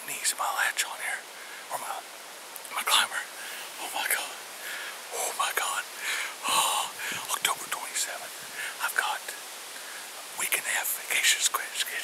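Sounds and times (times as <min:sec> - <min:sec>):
man whispering: 0:00.0 - 0:12.0.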